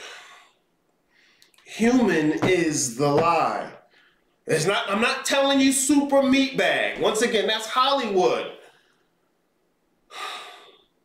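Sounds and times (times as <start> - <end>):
man's sharp in-breath: 10.1 - 11.0.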